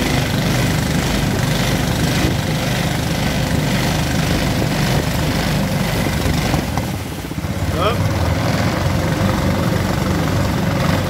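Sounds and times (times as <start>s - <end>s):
boat engine running: 0.0s - 11.0s.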